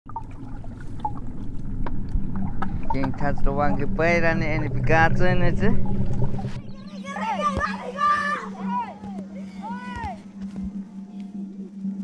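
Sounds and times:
river water lapping: 0.1 - 4.2
low rumble: 0.1 - 8.8.

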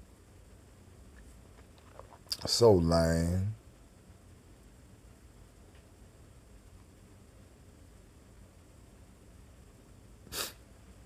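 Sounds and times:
faint hiss: 0.0 - 11.0
man's sharp breath into microphone: 10.3 - 10.6.

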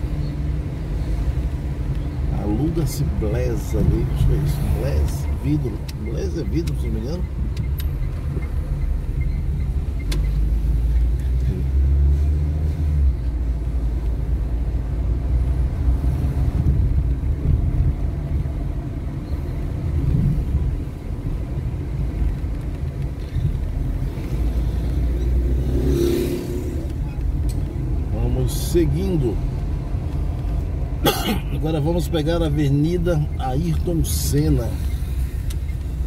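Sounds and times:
car engine and road noise: 0.0 - 36.0.

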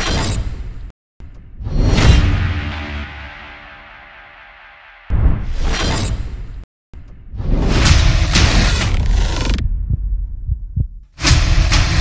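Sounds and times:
loud music hit: 1.9 - 5.4.

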